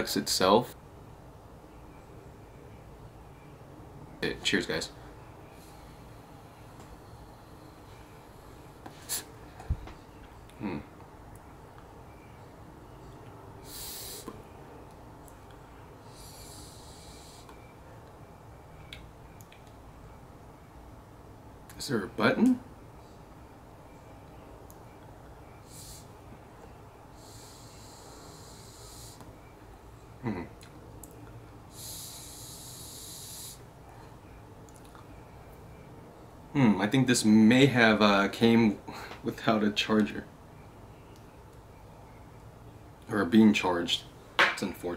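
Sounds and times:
hissy breaths: 5.4 - 9.9, 13.6 - 14.6, 16.0 - 17.7, 25.5 - 26.4, 27.1 - 29.5, 31.6 - 34.4.

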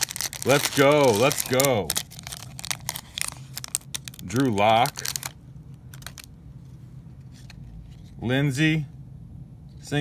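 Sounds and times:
foil wrapper crinkling: 0.0 - 6.3.

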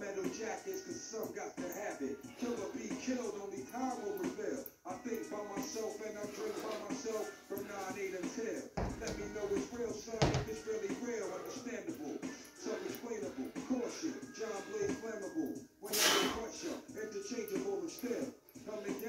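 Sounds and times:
hip-hop track playing: 0.0 - 19.0
male voice rapping: 0.0 - 19.0
kettlebells thudding on floor: 8.8 - 10.6.

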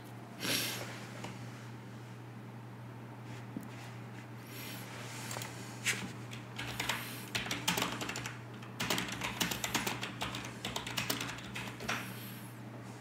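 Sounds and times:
low electrical hum: 0.0 - 13.0
keyboard typing: 6.3 - 12.1.

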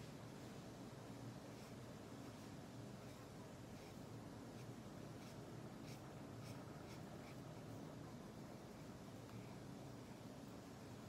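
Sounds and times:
marker pen rubbing on paper: 1.4 - 10.2.

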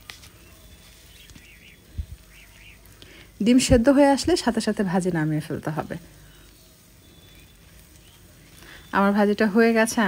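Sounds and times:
food frying in oil: 0.0 - 10.0.

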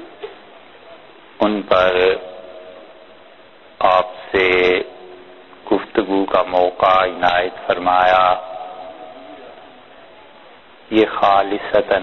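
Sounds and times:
faint steady hum: 0.0 - 12.0
man lecturing: 1.4 - 2.3, 3.8 - 5.0, 5.6 - 9.7, 10.9 - 12.0.

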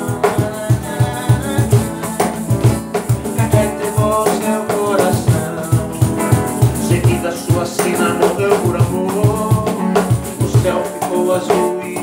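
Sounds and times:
acoustic guitar playing: 0.0 - 12.0
cajon bass strikes: 0.0 - 12.0.

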